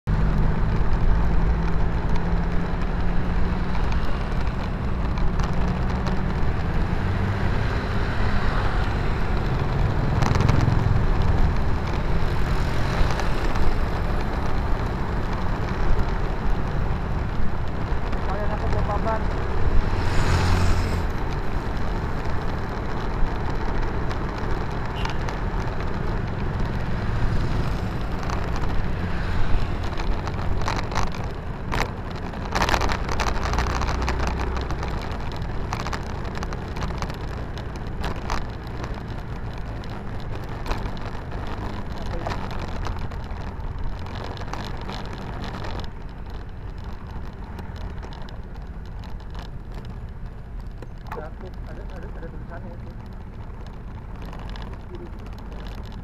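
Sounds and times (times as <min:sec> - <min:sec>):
road traffic noise: 0:00.0 - 0:56.0.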